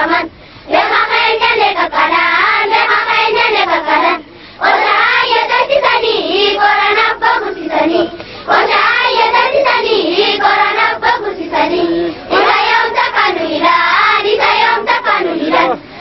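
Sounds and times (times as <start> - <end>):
girls singing in unison: 0.0 - 16.0.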